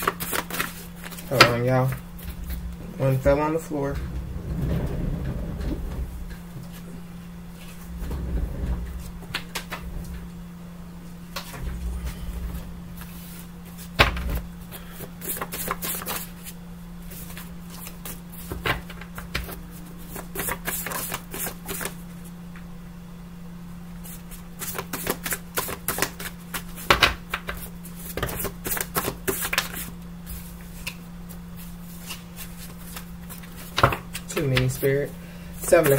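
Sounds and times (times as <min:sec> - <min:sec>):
cards being shuffled: 0:00.0 - 0:03.2, 0:15.2 - 0:22.0, 0:24.6 - 0:31.0
steady low hum: 0:00.0 - 0:35.9.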